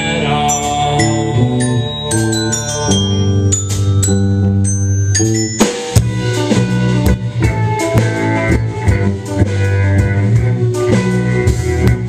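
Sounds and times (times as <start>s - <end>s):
ringing glockenspiel notes: 0.0s - 6.1s
electric guitars: 0.0s - 12.0s.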